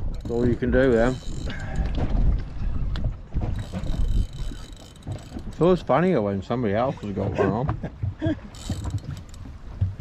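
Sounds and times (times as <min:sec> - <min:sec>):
water slapping against boat hull: 0:00.0 - 0:10.0
wind rumbling on microphone: 0:00.0 - 0:10.0.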